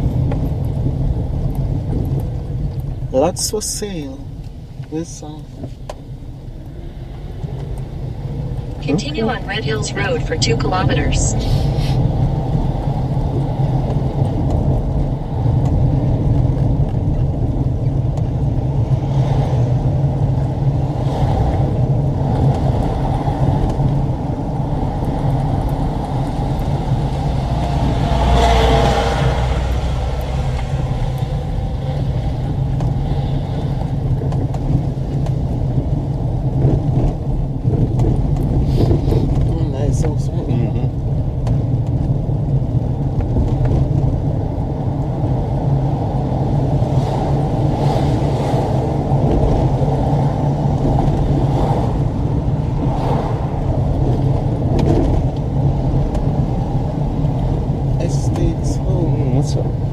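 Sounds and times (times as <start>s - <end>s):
car engine and road noise: 0.0s - 59.9s.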